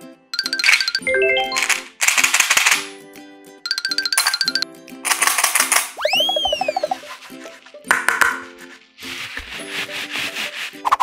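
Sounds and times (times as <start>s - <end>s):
bright background music: 0.0s - 11.0s
cartoon boing whistle: 6.0s - 7.0s.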